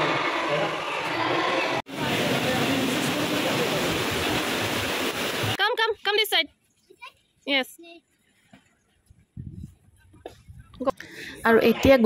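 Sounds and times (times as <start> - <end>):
water splashing: 1.9 - 5.6.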